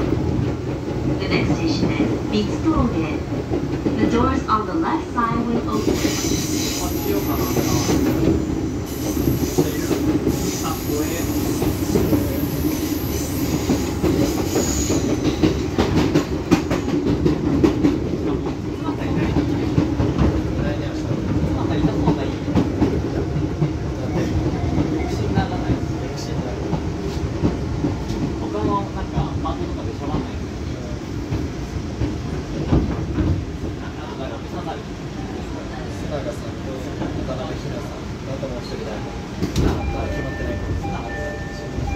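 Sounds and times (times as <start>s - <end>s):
train rumbling on rails: 0.0s - 41.9s.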